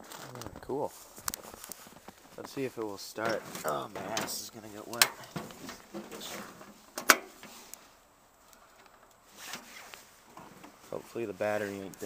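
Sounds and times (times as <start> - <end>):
handling noises: 0.0 - 12.0
clothing rustling: 0.1 - 8.0, 9.2 - 12.0.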